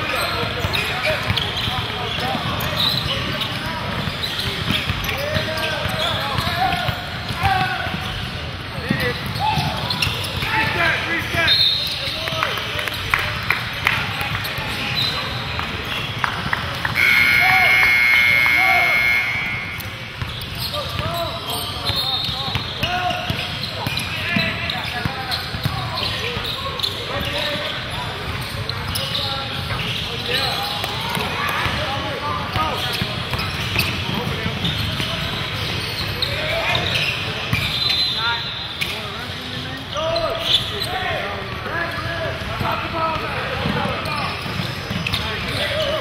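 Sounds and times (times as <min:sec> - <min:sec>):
sneaker squeaks: 0:00.0 - 0:12.3, 0:12.9 - 0:42.5, 0:43.1 - 0:46.0
people calling out: 0:17.0 - 0:20.1.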